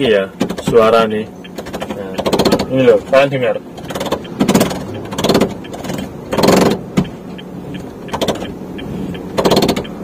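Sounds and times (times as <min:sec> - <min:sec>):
car seat rattling scrapes on rails: 0:03.8 - 0:07.1, 0:09.4 - 0:09.9
seat rail click: 0:03.8 - 0:07.1, 0:08.1 - 0:08.5, 0:09.3 - 0:10.0.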